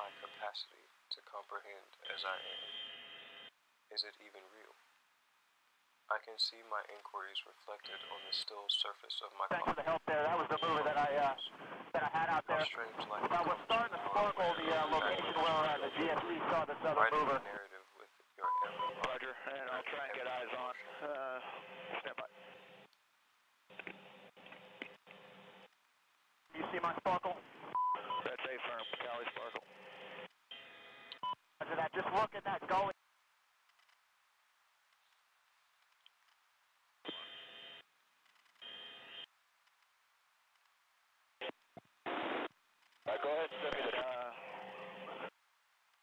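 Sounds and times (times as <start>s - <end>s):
tinny radio voices: 0.0s - 2.6s, 6.1s - 22.5s, 26.5s - 27.4s, 28.0s - 30.3s, 31.6s - 33.0s, 43.1s - 45.3s
radio buzzing bursts with tones: 13.4s - 16.6s.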